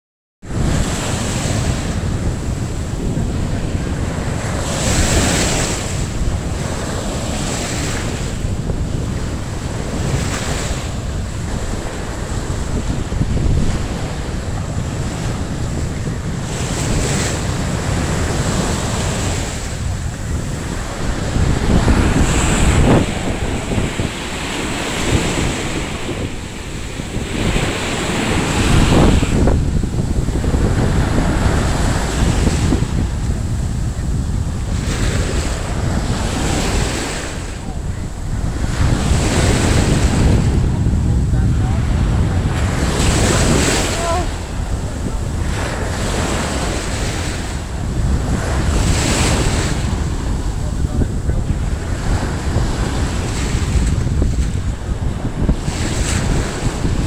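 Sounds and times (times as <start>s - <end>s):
ocean surf washing in: 0.4s - 57.0s
wind buffeting microphone: 0.4s - 57.0s.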